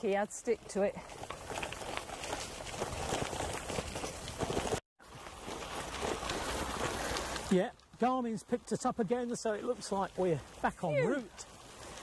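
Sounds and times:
bike tyres crunching on gravel: 0:00.0 - 0:12.0.

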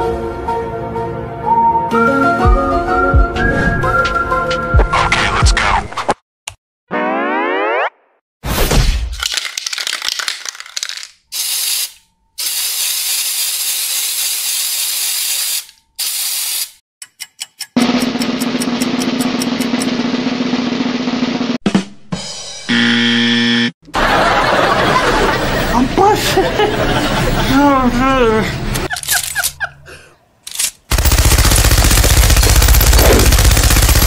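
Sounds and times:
cartoon boing glide: 0:06.9 - 0:08.2
spray-paint can hissing: 0:10.4 - 0:16.8.

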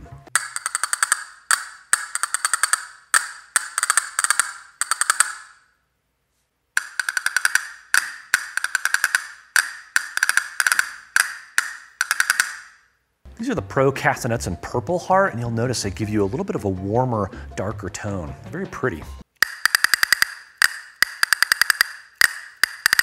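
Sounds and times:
castanet wooden clicks: 0:00.4 - 0:05.6, 0:06.8 - 0:12.9, 0:19.3 - 0:23.0.

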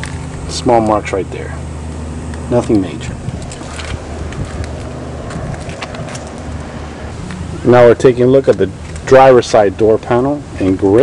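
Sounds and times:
low mechanical hum: 0:00.0 - 0:11.0
wind on microphone: 0:02.9 - 0:07.8.

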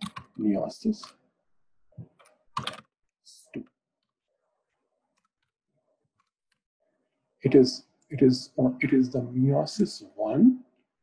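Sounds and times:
person speaking: 0:00.0 - 0:01.1, 0:07.4 - 0:10.6
keyboard keystrokes: 0:02.2 - 0:02.8.

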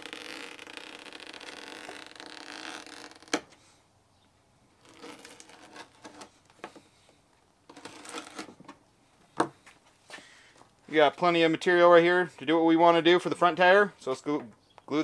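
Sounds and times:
knife cutting rubber tire: 0:00.0 - 0:03.6, 0:04.8 - 0:07.0, 0:07.7 - 0:08.6.

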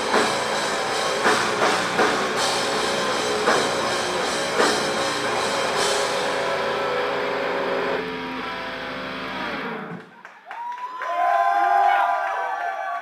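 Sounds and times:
heavy metal band playing: 0:00.0 - 0:10.0
people whooping and cheering: 0:10.1 - 0:13.0.

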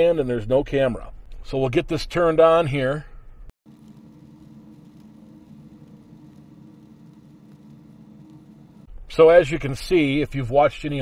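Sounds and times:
faint low hum: 0:03.0 - 0:10.9.

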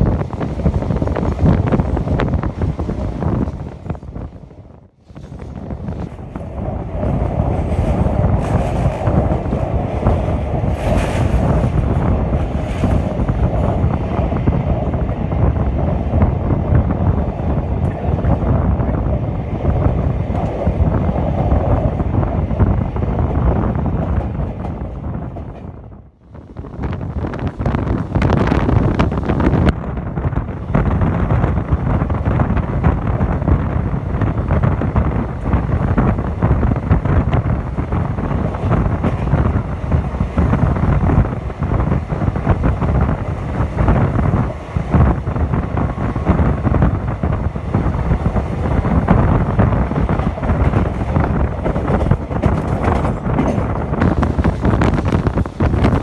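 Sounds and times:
wind on microphone: 0:00.0 - 0:56.0
train wheels clattering over rails: 0:05.1 - 0:15.0, 0:31.4 - 0:56.0.

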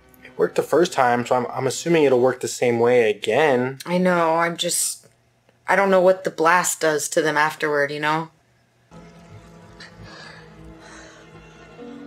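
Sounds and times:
low sustained music score: 0:08.9 - 0:12.0
breathy gasps: 0:09.8 - 0:11.5.

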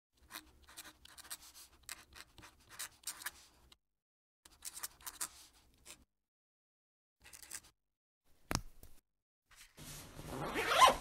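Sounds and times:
pen nib scratching on paper: 0:00.2 - 0:03.5, 0:04.5 - 0:06.0.

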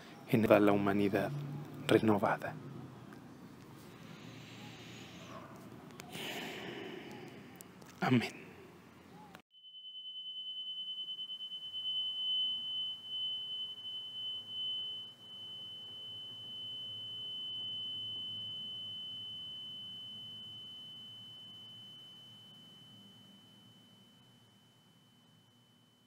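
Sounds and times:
steady high-pitched tone: 0:09.5 - 0:26.0.

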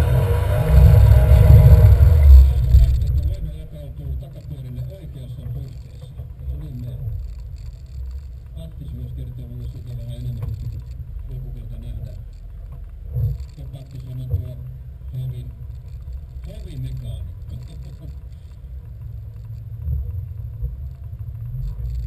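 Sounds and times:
car engine revving: 0:00.0 - 0:04.3
car engine idling: 0:00.0 - 0:22.0
faint voices: 0:00.7 - 0:07.3.

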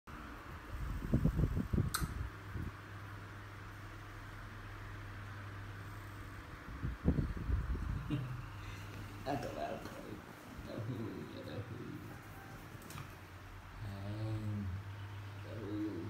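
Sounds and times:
low mechanical hum: 0:00.1 - 0:16.0
sharp click: 0:01.9 - 0:02.2.

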